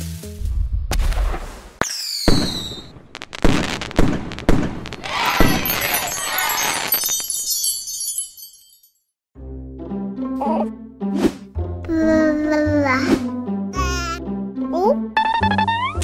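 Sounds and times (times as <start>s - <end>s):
crackling sparkles: 0.1s - 7.6s
firework bangs: 0.7s - 7.5s
rocket launching with whistle: 0.9s - 6.9s.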